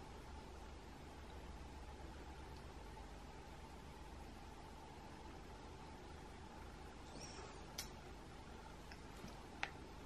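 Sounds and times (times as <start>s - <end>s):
faint hiss and hum: 0.0s - 10.0s
faint high squeak: 7.0s - 7.7s.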